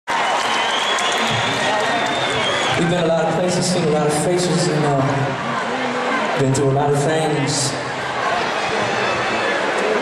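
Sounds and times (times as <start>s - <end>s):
audience applauding: 0.1s - 4.4s
crowd voices: 0.1s - 10.0s.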